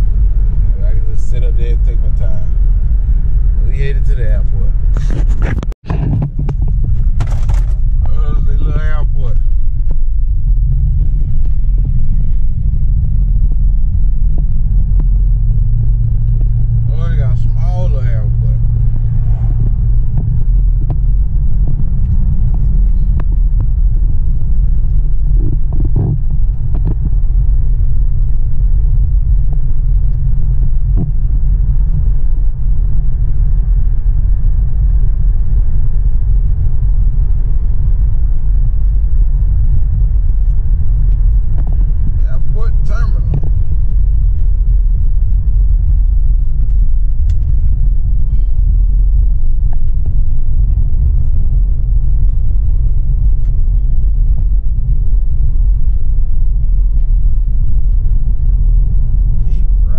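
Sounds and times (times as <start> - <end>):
low drone: 0.0 - 59.9
road and engine rumble: 0.0 - 59.9.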